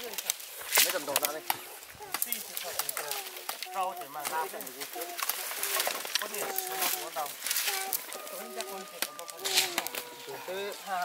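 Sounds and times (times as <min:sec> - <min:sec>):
firewood knocking and clattering: 0:00.0 - 0:10.1
voices talking: 0:00.0 - 0:11.0.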